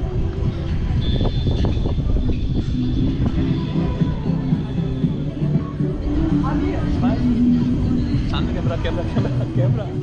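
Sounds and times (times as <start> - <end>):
wind rushing over microphone: 0.0 - 4.4.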